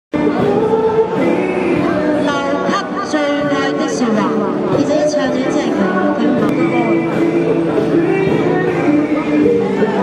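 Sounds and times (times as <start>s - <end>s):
person singing through speaker: 0.1s - 10.0s
musical accompaniment: 0.2s - 10.0s.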